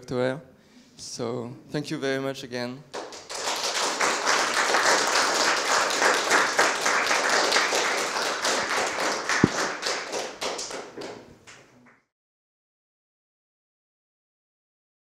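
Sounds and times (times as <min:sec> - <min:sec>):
audience applauding: 0:02.9 - 0:11.3.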